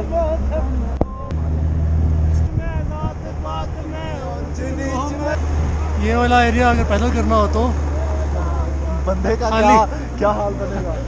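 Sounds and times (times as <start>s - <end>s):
van engine droning: 0.0s - 11.0s.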